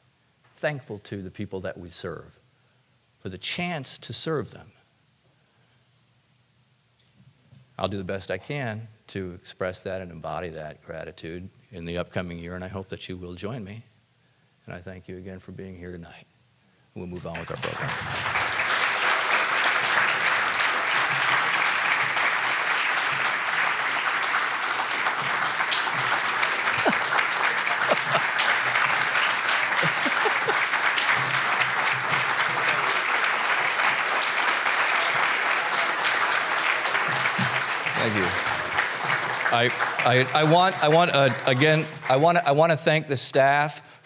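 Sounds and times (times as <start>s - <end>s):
audience applause: 17.2s - 42.6s.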